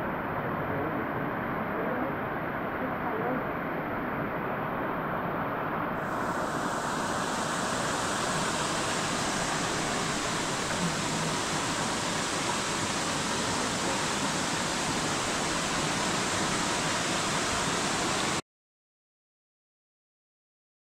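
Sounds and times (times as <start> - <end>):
waterfall rushing into a pool: 0.0 - 18.4.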